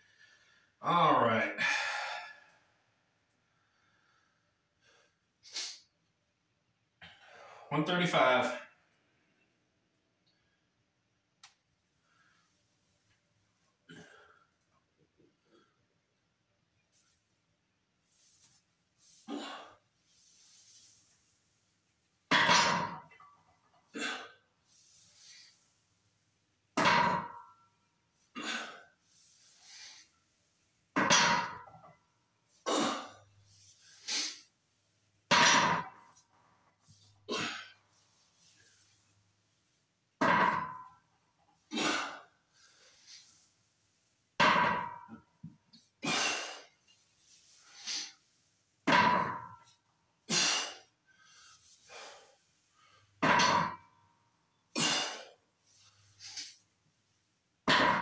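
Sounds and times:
heavy breathing: 1.6s - 2.6s
barbell thudding on floor: 22.3s - 23.2s, 26.8s - 27.5s, 31.0s - 31.9s, 35.3s - 36.1s, 40.2s - 41.0s, 44.4s - 45.2s, 48.9s - 49.6s, 53.2s - 53.8s, 57.7s - 58.0s
metallic ring of barbell plates: 26.8s - 27.6s, 31.0s - 31.9s, 35.3s - 36.0s, 48.9s - 49.7s, 53.2s - 53.8s, 57.7s - 58.0s.

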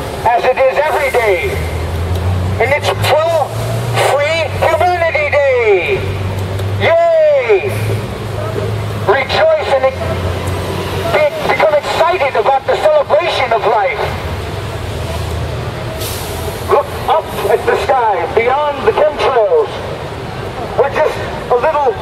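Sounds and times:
street traffic hum: 0.0s - 22.0s
man shouting through megaphone: 0.2s - 1.7s, 2.6s - 6.1s, 6.8s - 8.0s, 9.1s - 10.2s, 11.0s - 14.2s, 16.7s - 19.8s, 20.7s - 22.0s.

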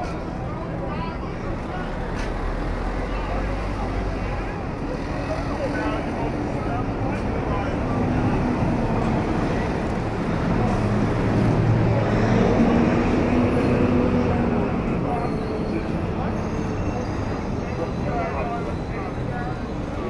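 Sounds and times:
bus engine passing: 0.0s - 20.0s
city street traffic: 0.0s - 20.0s
passers-by talking: 0.0s - 20.0s.

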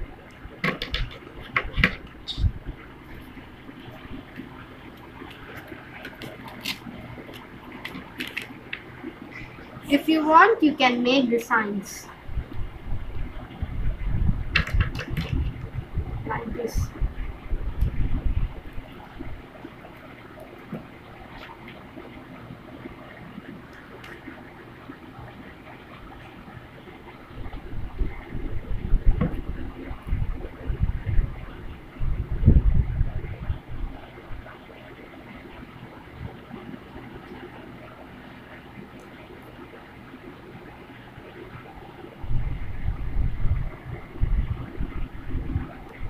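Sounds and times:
steady background hiss: 0.0s - 46.0s
low rumbling handling noise: 27.1s - 34.2s.

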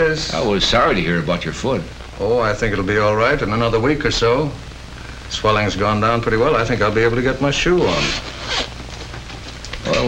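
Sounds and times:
man speaking: 0.0s - 4.6s, 5.3s - 8.2s
film soundtrack hiss: 0.0s - 10.0s
low hum: 0.0s - 10.0s.

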